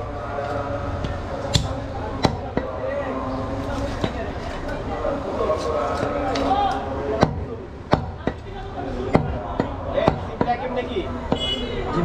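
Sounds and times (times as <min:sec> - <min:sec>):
voices talking: 0:00.0 - 0:12.0
knife chopping meat and bone: 0:09.2 - 0:10.6.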